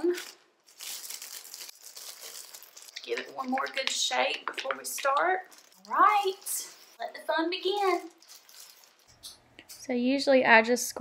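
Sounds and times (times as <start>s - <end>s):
plastic gloves crinkling: 0.0s - 9.3s.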